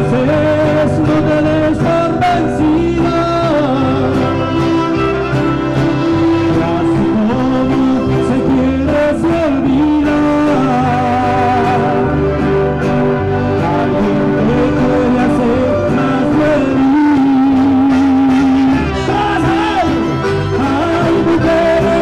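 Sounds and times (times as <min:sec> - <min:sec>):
amplified band accompaniment: 0:00.0 - 0:22.0
man singing into a microphone: 0:00.0 - 0:22.0.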